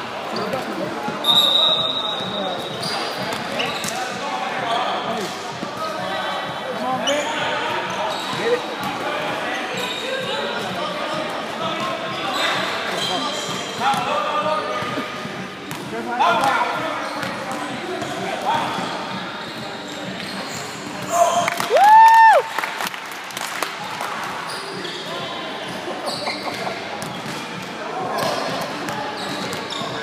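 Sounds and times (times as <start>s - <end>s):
murmur of crowd voices: 0.0s - 30.0s.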